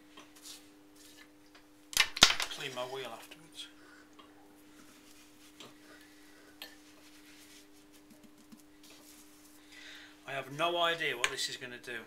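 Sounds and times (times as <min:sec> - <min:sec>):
faint steady hum: 0:00.0 - 0:12.0
ash rubbed into clay pot: 0:04.7 - 0:09.6.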